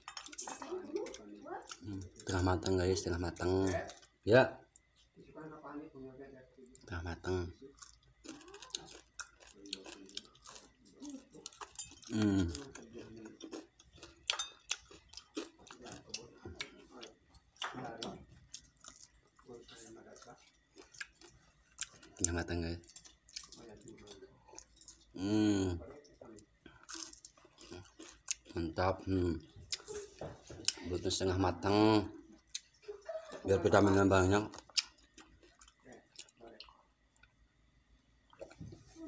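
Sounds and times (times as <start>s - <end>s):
person chewing: 1.0s - 4.2s, 6.7s - 25.8s, 26.4s - 28.8s, 29.5s - 30.9s, 32.3s - 32.9s, 34.4s - 37.4s.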